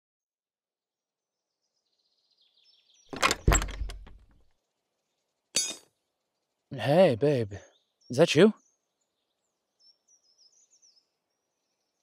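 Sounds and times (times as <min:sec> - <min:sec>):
knocks with heavy thud: 0:03.2 - 0:04.2
faint bird chirps: 0:04.6 - 0:12.0
ringing metallic clank: 0:05.6 - 0:05.8.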